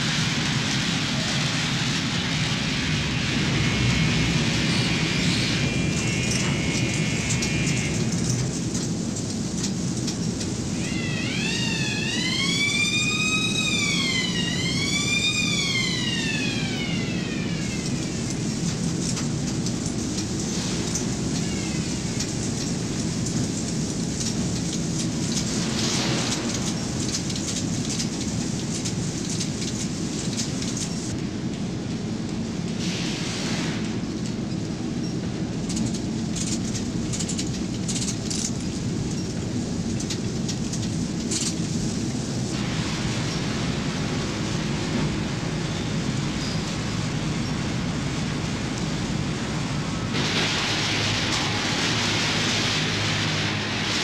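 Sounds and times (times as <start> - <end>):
industrial rush and rumble: 0.0 - 54.0
high whine: 42.5 - 54.0.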